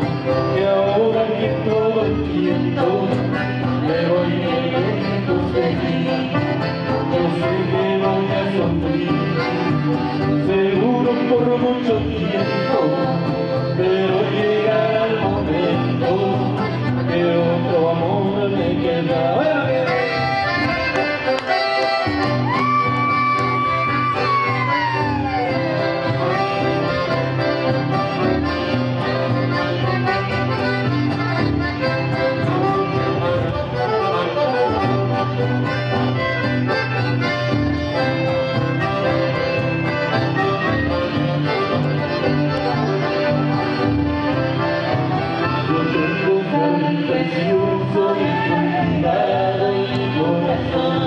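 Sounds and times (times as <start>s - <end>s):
accordions playing: 0.0s - 51.0s
guitar: 0.0s - 51.0s.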